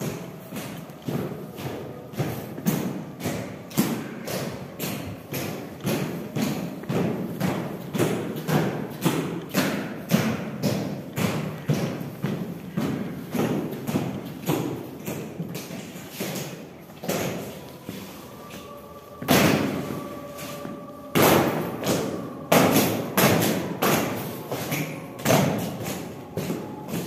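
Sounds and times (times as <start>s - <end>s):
boots marching on stone steps: 0.1s - 27.0s.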